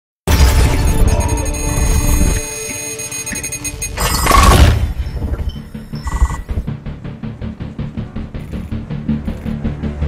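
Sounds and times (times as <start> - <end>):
music: 0.3 - 10.0
electronic beeping tones: 0.4 - 6.7
rapid digital ticking: 0.6 - 4.8, 5.7 - 6.6.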